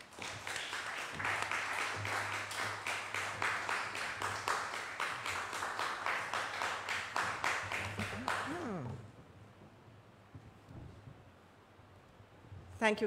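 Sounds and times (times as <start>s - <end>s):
congregation applauding: 0.0s - 8.9s
low electrical hum: 0.0s - 13.0s.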